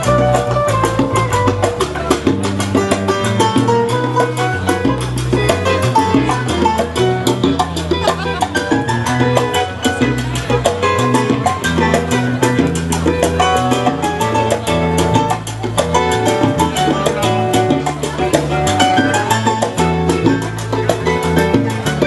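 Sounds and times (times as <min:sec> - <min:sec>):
salsa music from vinyl: 0:00.0 - 0:22.0.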